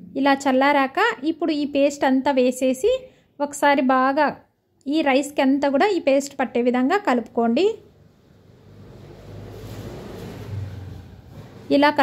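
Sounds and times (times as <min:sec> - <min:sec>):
wooden spatula scraping steel bowl: 0:09.1 - 0:12.0.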